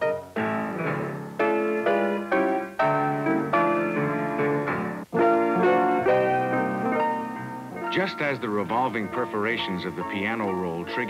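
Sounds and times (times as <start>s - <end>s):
player piano playing: 0.0s - 11.0s.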